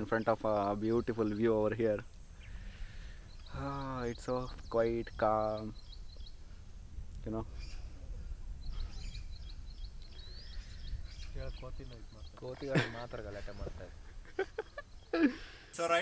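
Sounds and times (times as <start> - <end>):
birds chirping: 0.0 - 16.0
wind rumble on microphone: 2.2 - 12.5.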